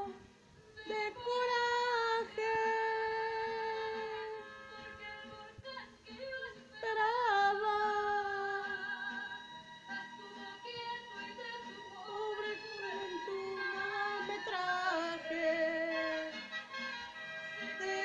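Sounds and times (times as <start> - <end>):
woman singing long notes: 0.0 - 9.3, 10.4 - 16.4, 17.6 - 18.0
recorded song: 0.0 - 18.0.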